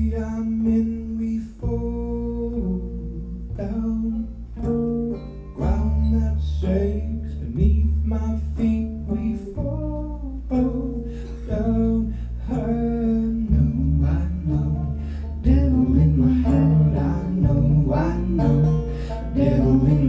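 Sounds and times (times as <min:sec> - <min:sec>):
man singing: 0:00.0 - 0:04.8, 0:05.6 - 0:20.0
banjo: 0:00.0 - 0:20.0
low bass line: 0:00.0 - 0:20.0
strummed acoustic guitar: 0:00.0 - 0:20.0.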